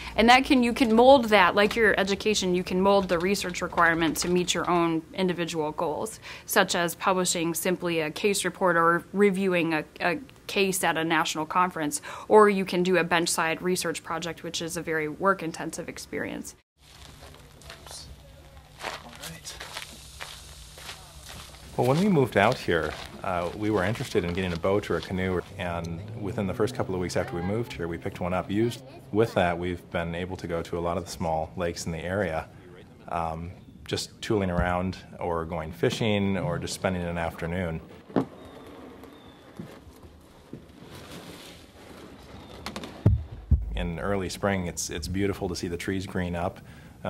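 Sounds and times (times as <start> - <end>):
footsteps crunching on gravel: 16.8 - 25.8.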